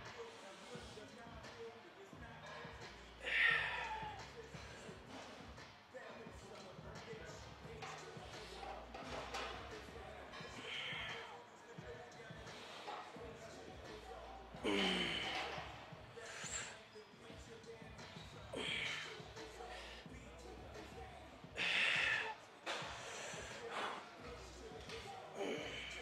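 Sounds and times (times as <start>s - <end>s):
faint background music: 0.0s - 26.0s
man straining and grunting: 3.2s - 4.2s, 14.6s - 15.7s, 18.4s - 19.1s.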